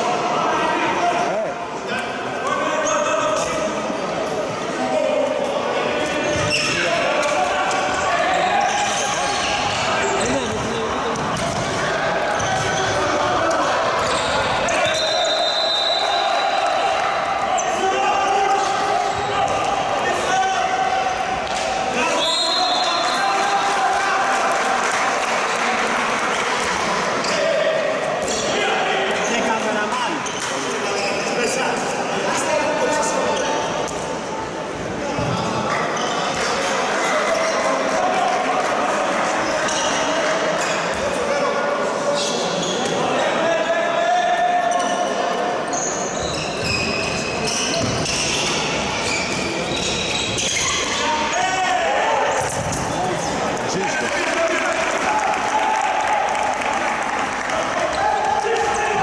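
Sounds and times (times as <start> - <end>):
ball bouncing on court: 10.3 - 13.2, 47.8 - 48.4.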